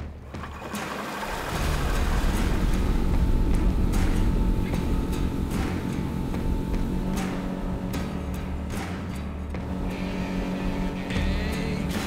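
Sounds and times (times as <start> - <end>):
background music: 0.0 - 12.0
propeller churning water: 0.0 - 12.0
outboard motor running: 0.2 - 12.0.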